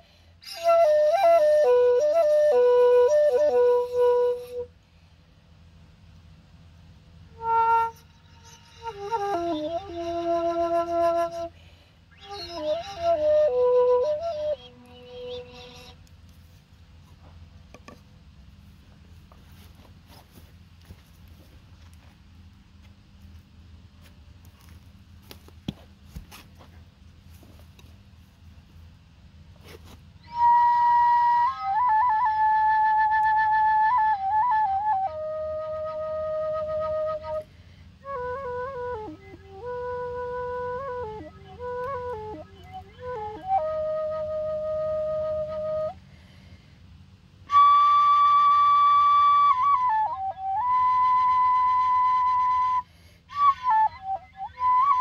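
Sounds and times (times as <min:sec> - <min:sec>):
bamboo flute breathy notes: 0:00.0 - 0:05.4, 0:07.3 - 0:16.6, 0:29.6 - 0:55.0.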